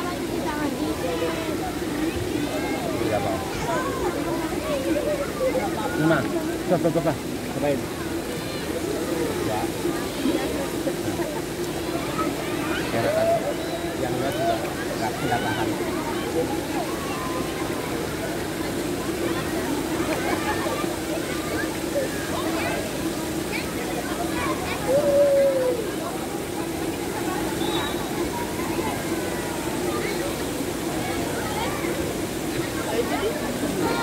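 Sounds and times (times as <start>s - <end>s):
people and children chattering: 0.0s - 34.0s
water rushing from fountains: 0.0s - 34.0s.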